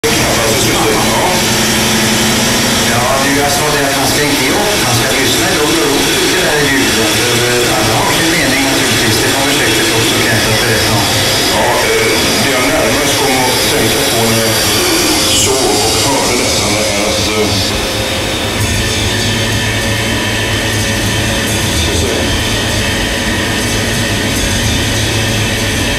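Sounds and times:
man speaking: 0:00.0 - 0:02.1, 0:02.8 - 0:18.0, 0:21.8 - 0:22.4
man's voice: 0:00.0 - 0:18.1, 0:21.7 - 0:22.5
loud noise drone: 0:00.0 - 0:25.9
loud wall of noise music: 0:00.0 - 0:25.9
steady low hum: 0:00.0 - 0:25.9.

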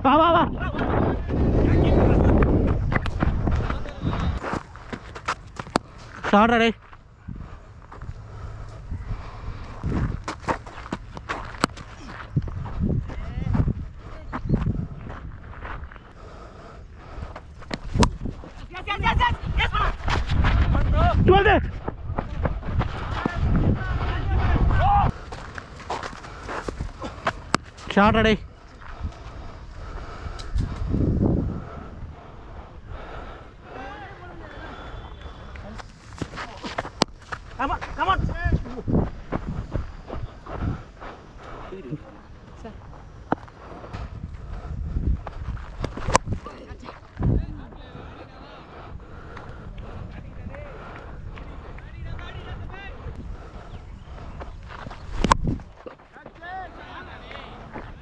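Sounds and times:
wind buffeting microphone: 0:00.0 - 0:56.0
distant voices calling: 0:22.4 - 0:58.0.

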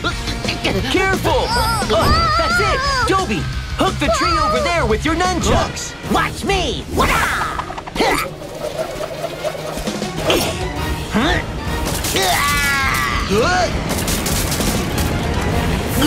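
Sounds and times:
cartoon background music: 0:00.0 - 0:16.0
wordless cries and shouts: 0:00.8 - 0:06.0, 0:06.8 - 0:13.4.

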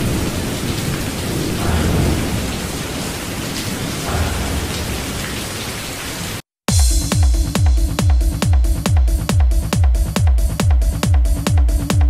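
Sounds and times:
rolling thunder rumbles: 0:00.0 - 0:05.8
heavy rain hissing: 0:00.0 - 0:08.3.

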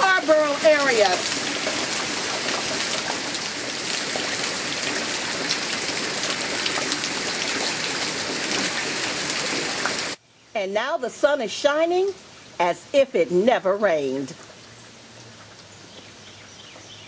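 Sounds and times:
heavy rain on standing water: 0:00.0 - 0:10.2.

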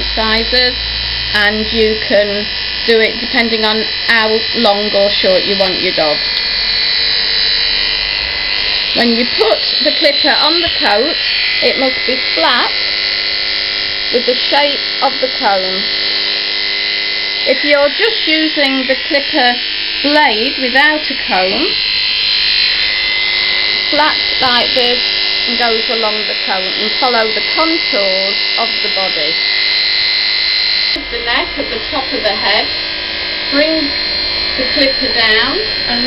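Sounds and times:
electric clippers whining: 0:00.0 - 0:36.0.

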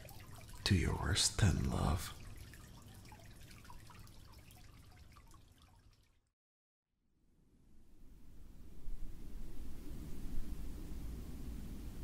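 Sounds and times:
water dripping in shower: 0:00.0 - 0:06.3
faint low rumble: 0:07.6 - 0:12.0.

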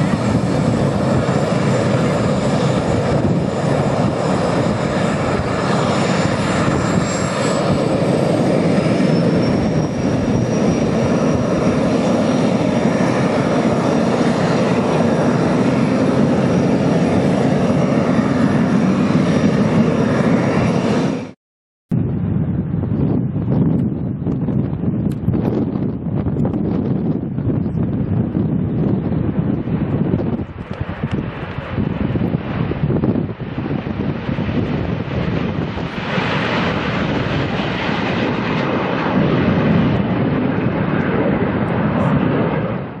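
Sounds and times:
wind buffeting microphone: 0:00.0 - 0:21.3, 0:21.9 - 0:43.0
jet engines running: 0:00.0 - 0:21.4, 0:22.0 - 0:43.0.

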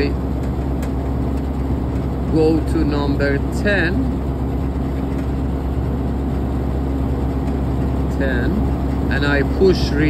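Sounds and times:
outdoor air conditioning unit humming: 0:00.0 - 0:10.0.

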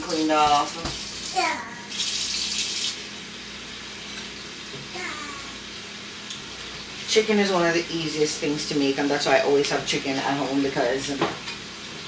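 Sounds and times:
small child calling: 0:01.4 - 0:01.9, 0:04.9 - 0:05.6.

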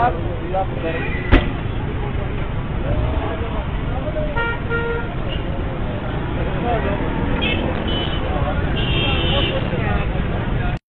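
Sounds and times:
street traffic: 0:00.0 - 0:10.8
voices: 0:00.0 - 0:10.8
vehicle horns honking: 0:04.4 - 0:05.5, 0:07.4 - 0:09.8.

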